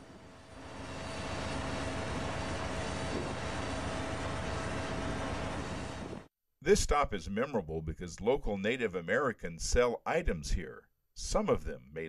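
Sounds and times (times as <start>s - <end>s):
faint steady hum: 0.0s - 6.2s.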